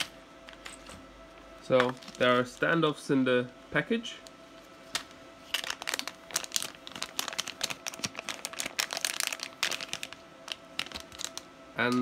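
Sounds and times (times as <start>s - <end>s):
anti-static bag crinkling: 1.6s - 3.0s, 4.1s - 11.5s.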